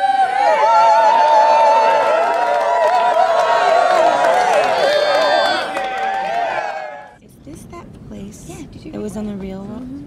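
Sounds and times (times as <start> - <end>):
crowd cheering and whooping: 0.0 - 7.2.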